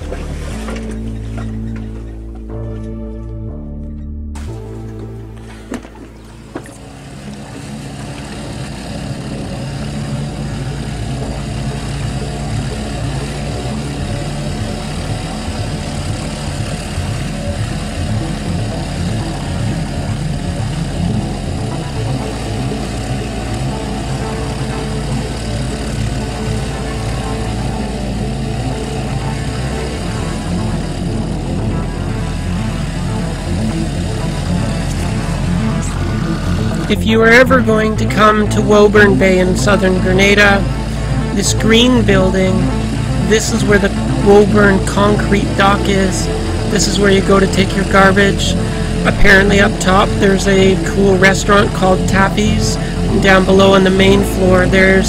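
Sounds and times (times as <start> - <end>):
outboard motor running: 0.0 - 3.8, 4.4 - 55.0
background music: 0.0 - 55.0.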